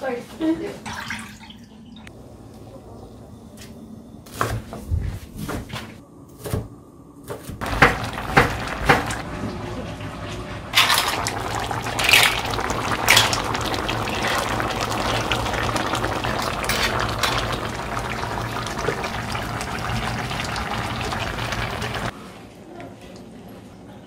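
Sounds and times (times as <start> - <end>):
pots of soup bubbling: 7.6 - 22.2
shellfish splashing into broth: 10.8 - 22.1.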